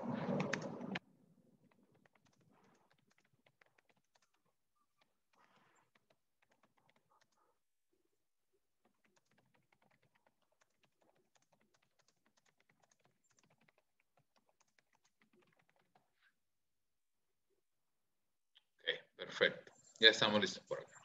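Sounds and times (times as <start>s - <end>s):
computer keyboard typing: 1.7s - 7.5s, 8.8s - 16.1s.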